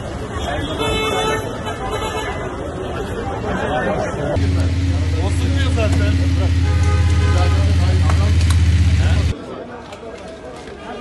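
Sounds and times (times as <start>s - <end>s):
vehicle engine idling: 4.4s - 9.3s.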